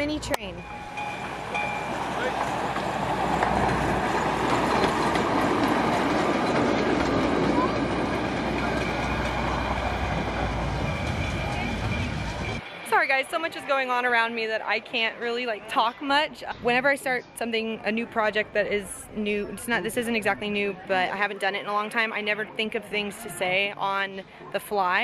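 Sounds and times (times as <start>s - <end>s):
miniature train rolling on track: 0.6s - 14.5s.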